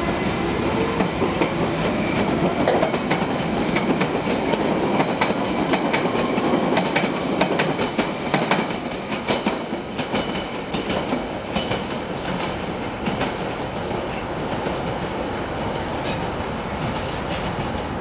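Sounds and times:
rumble of train on track: 0.0s - 18.0s.

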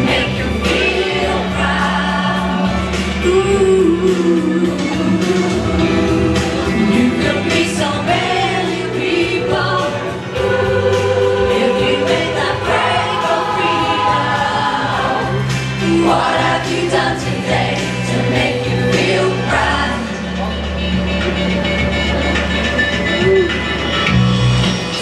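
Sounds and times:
mixed choir singing pop song: 0.0s - 20.8s.

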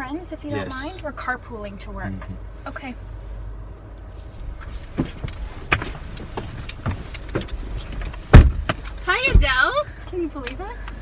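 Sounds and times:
low steady car cabin rumble: 0.0s - 11.0s
clicks and rustling: 4.0s - 9.5s
car door shutting with thump: 4.4s - 9.7s.

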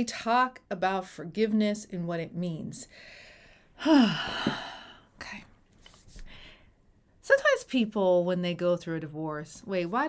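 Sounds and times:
faint breath in: 2.9s - 5.1s, 6.2s - 6.8s
woman sighing: 3.8s - 5.1s.

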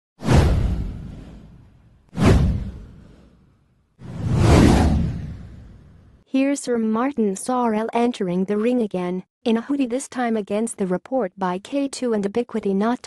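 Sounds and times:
whoosh sound effects: 2.2s - 3.4s, 4.0s - 6.2s.

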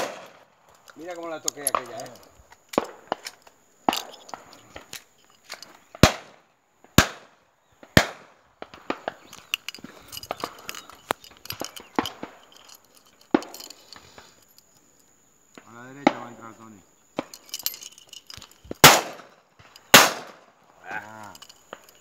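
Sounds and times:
shotgun shots: 0.0s - 0.5s, 6.0s - 6.4s, 7.0s - 7.3s, 7.9s - 9.2s, 18.8s - 20.5s
faint shots and pops: 18.8s - 20.5s.

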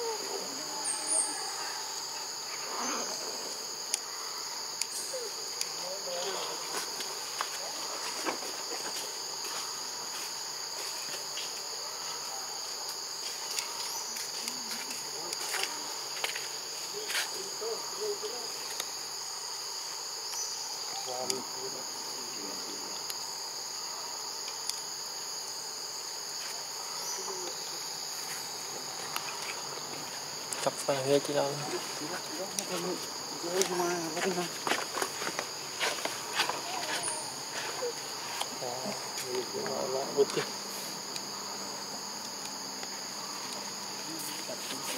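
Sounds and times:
insect chorus drone: 0.0s - 44.9s.

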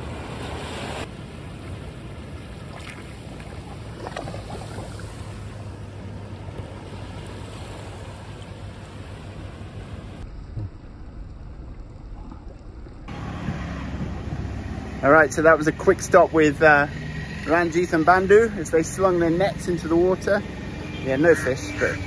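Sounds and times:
surf: 0.0s - 11.1s
deep engine rumble: 0.0s - 22.0s
low hum: 1.1s - 22.0s.

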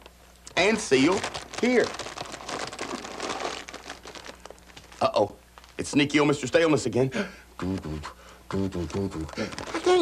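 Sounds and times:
chip bag crinkling: 0.5s - 5.9s, 9.3s - 10.0s.

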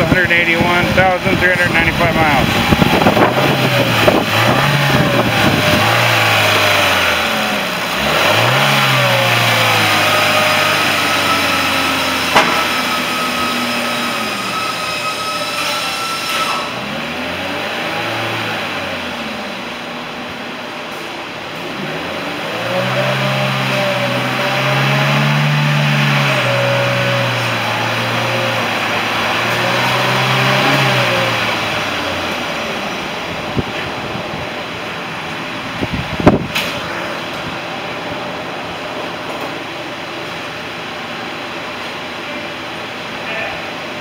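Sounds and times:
car engine revving: 0.0s - 15.0s, 16.6s - 20.5s, 21.6s - 43.1s
sharp knocks: 12.3s - 12.8s.

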